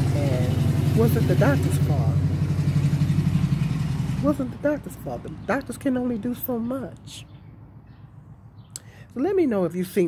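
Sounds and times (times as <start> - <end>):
engine low pulsing hum: 0.0 - 8.8.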